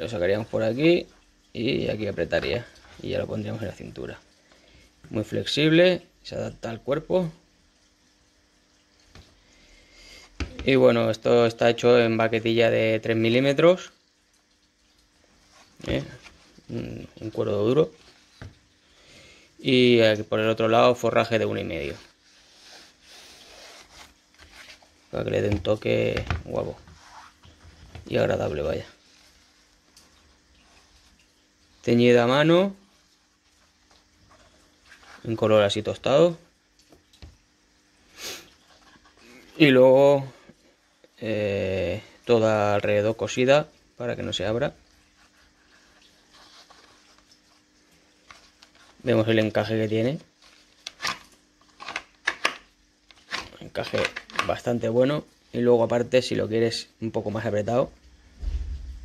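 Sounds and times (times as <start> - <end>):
soft breath hiss: 9.2 - 12.9, 15.2 - 20.1, 20.7 - 36.5, 37.9 - 42.7
hands rubbing leather: 22.3 - 25.0.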